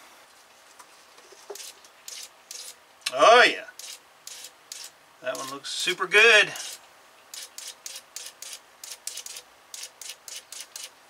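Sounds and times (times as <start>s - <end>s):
fuel injector hissing spurts: 3.8s - 5.6s, 6.5s - 10.9s.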